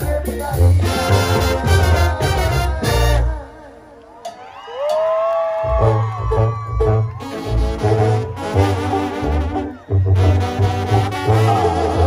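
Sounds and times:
tuba bass line: 0:00.0 - 0:03.7, 0:05.7 - 0:12.0
brass band chords: 0:00.0 - 0:04.0, 0:05.7 - 0:12.0.

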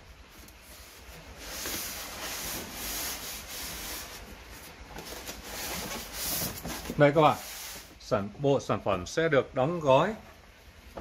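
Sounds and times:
cardboard box flaps scraping: 0:01.2 - 0:07.8.

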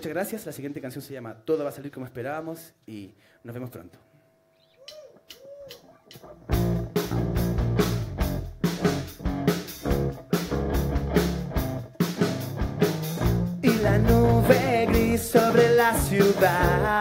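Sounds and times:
loud guitar music with beat: 0:06.4 - 0:17.0.

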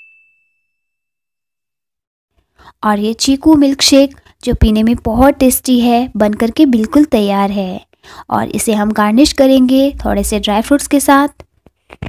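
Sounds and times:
bright bell ding: 0:00.0 - 0:01.0.

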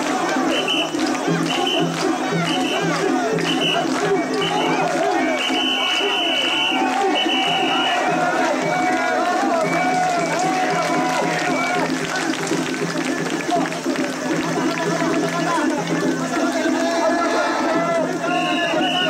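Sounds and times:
crowd shouting and chanting: 0:00.0 - 0:19.0
shrill whistle blasts: 0:00.5 - 0:08.2, 0:09.5 - 0:10.6, 0:18.2 - 0:19.0.

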